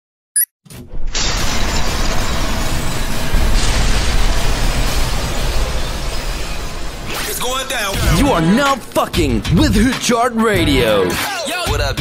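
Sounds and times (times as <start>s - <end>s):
loud mechanical rattling: 0.9s - 9.1s
deep explosion boom: 1.3s - 9.7s.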